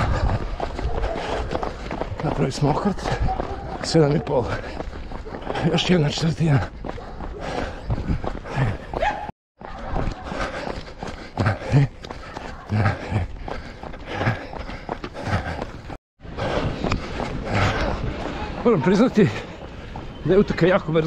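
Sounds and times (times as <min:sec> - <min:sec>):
heavy breathing: 0:00.0 - 0:09.0, 0:09.6 - 0:18.6
footfalls on pavement: 0:00.0 - 0:21.0.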